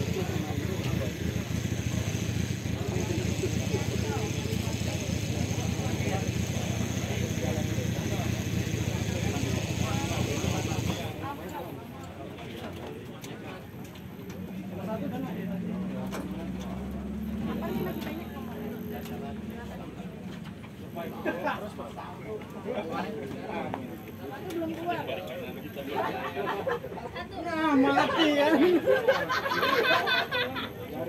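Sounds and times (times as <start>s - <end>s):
buggy engine running: 0.0s - 11.7s, 13.8s - 21.1s.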